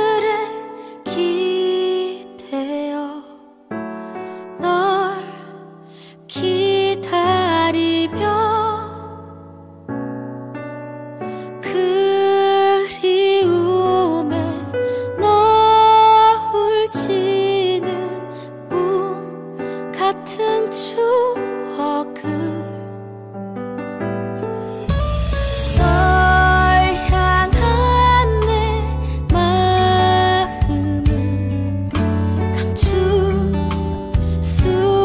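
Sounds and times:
woman singing a slow ballad: 0.0 - 9.8, 11.2 - 23.0, 25.6 - 35.0
soft instrumental backing: 0.0 - 35.0
guitar chords: 24.1 - 35.0
soft bass: 24.4 - 35.0.

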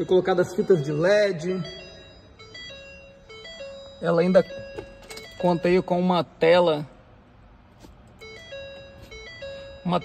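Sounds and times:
electronic startup beeping melody: 0.0 - 6.2, 8.2 - 10.0.

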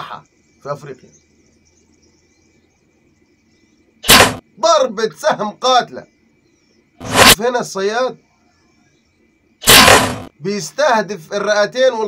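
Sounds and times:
faint steady high tone: 7.8 - 9.6.

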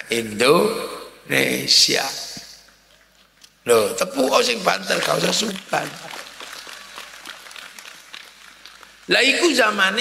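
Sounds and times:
crowd applauding: 4.3 - 9.8.

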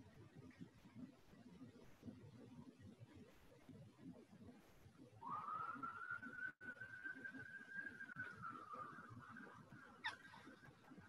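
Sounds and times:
high whistling tone: 5.2 - 10.1.

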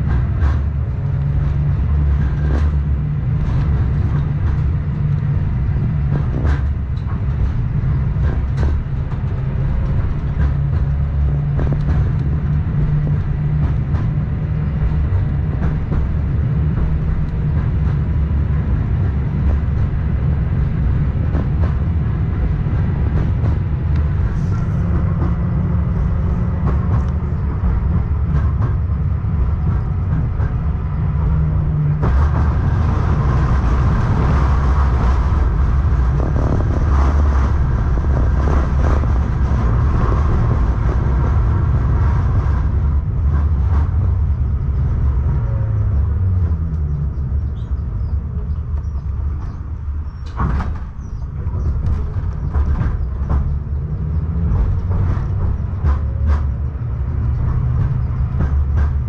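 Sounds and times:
tram wheels rumbling on rails: 0.0 - 59.0.

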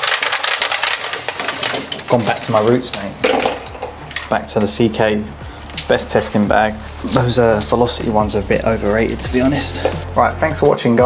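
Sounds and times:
cable reel clicking rapidly: 0.0 - 3.0.

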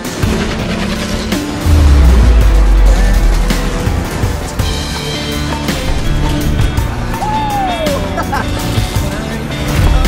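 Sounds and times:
dramatic trailer music: 0.0 - 9.0
deep bass boom: 1.6 - 5.2.

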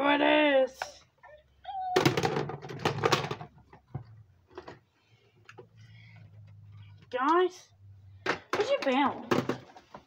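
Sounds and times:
rustling and knocking: 2.0 - 4.9.

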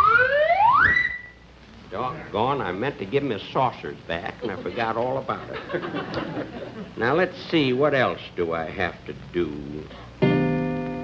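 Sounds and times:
slide whistle rising glide: 0.0 - 1.4.

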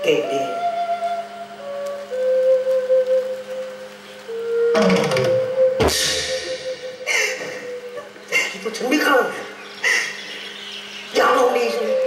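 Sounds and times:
held melody line: 0.0 - 8.8, 10.6 - 12.0
low drone: 0.0 - 12.0
drums and cymbals: 4.8 - 7.0
loud cymbal crash: 5.8 - 7.0.

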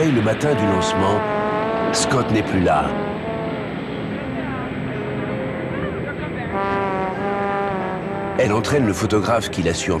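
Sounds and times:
background music: 0.0 - 10.0
long steady horn-like note: 0.0 - 10.0.

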